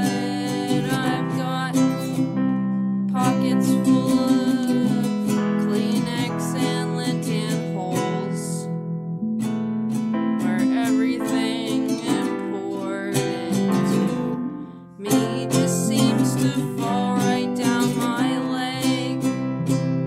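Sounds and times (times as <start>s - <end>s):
woman singing: 0.0s - 2.5s, 3.1s - 8.8s, 10.4s - 19.6s
strummed acoustic guitar: 0.0s - 20.0s.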